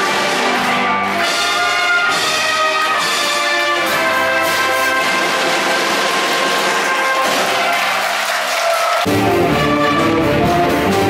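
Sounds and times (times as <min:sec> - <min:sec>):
wind band playing: 0:00.0 - 0:11.0.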